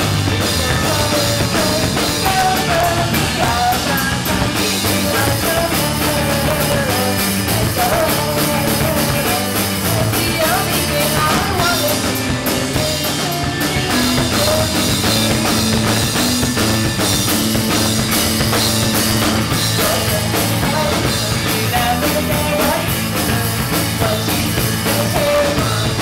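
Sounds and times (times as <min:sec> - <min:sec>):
person singing through pa: 0:00.0 - 0:15.9, 0:19.4 - 0:26.0
drum kit: 0:00.0 - 0:26.0
electric guitar: 0:00.0 - 0:26.0.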